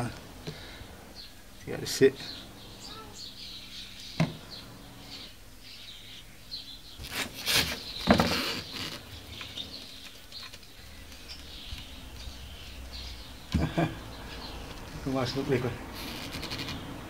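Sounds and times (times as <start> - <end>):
birds chirping: 0.0 - 17.0.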